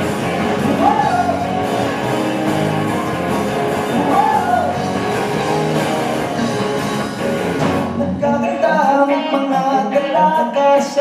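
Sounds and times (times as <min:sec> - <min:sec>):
bass guitar: 0:00.0 - 0:11.0
drums: 0:00.0 - 0:11.0
electric guitars: 0:00.0 - 0:11.0
keyboard: 0:00.0 - 0:11.0.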